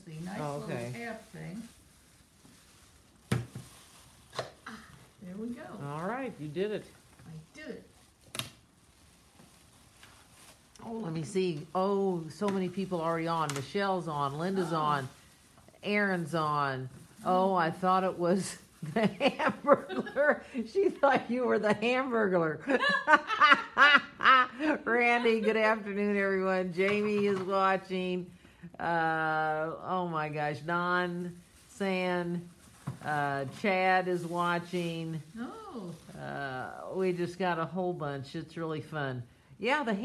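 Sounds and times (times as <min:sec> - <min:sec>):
woman laughing: 0:18.8 - 0:21.8, 0:22.6 - 0:25.8.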